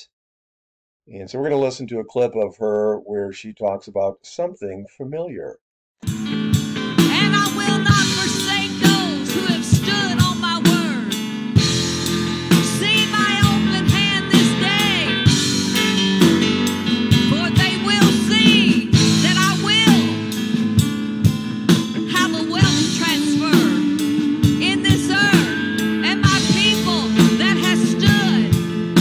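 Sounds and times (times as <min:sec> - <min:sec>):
keyboard chords: 0:06.0 - 0:29.0
woman singing: 0:07.1 - 0:11.2, 0:12.6 - 0:15.3, 0:17.3 - 0:20.2, 0:22.0 - 0:28.6
drum beat: 0:11.6 - 0:25.6, 0:26.2 - 0:29.0.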